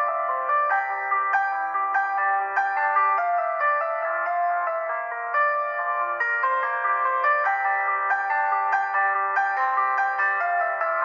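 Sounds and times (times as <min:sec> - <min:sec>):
slow piano melody: 0:00.0 - 0:11.0.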